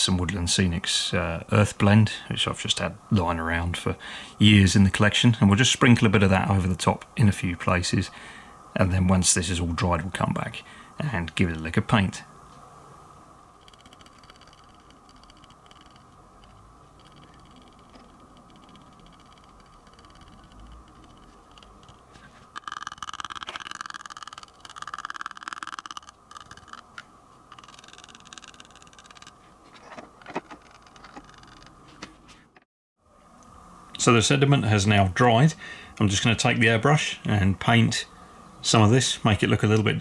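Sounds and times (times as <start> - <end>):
faint steady hum: 0.0 - 40.0
small clicks: 22.6 - 31.8.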